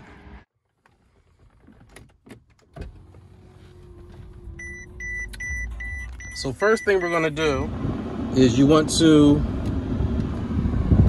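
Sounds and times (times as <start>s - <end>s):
car rumble: 0.0s - 11.0s
car warning chime beeping: 4.6s - 7.6s.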